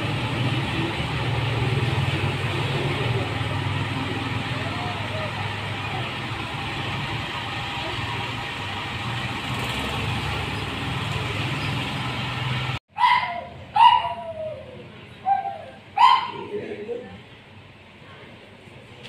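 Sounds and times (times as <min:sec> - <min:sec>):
puppy yelping: 0:13.0 - 0:16.6.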